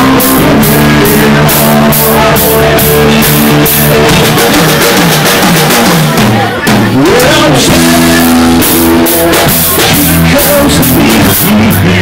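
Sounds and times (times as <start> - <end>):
bass guitar: 0.0 - 12.0
drum kit: 0.0 - 12.0
electric guitar: 0.0 - 12.0.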